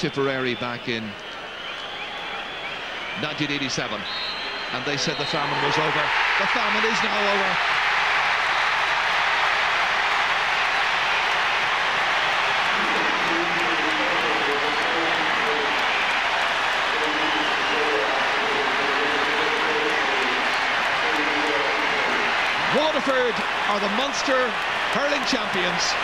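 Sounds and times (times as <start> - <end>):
voices rising from crowd: 0.0 - 8.7, 11.6 - 26.0
crowd cheering and clapping: 0.0 - 26.0.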